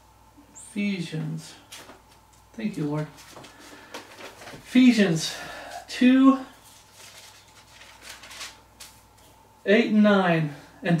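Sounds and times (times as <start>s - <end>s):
thin pages being turned: 3.1s - 4.7s, 6.6s - 9.3s.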